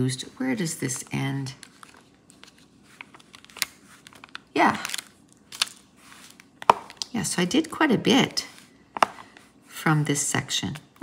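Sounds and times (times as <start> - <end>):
plastic film handling: 1.6 - 7.2.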